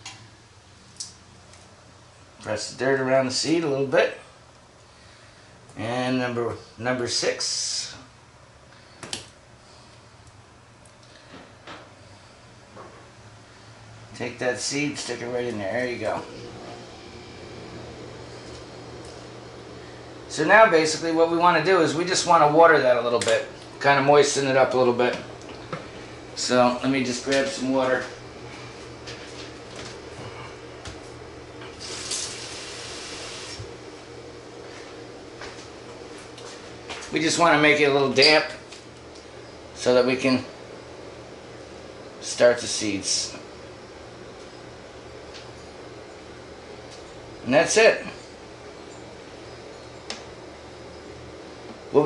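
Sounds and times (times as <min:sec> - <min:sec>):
low steady hum: 0:00.0 - 0:52.0
short hiss: 0:31.8 - 0:33.6.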